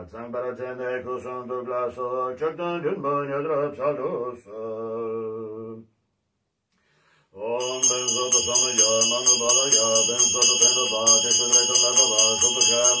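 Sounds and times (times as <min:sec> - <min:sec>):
man chanting: 0:07.4 - 0:13.0
hand bell ringing: 0:07.6 - 0:13.0.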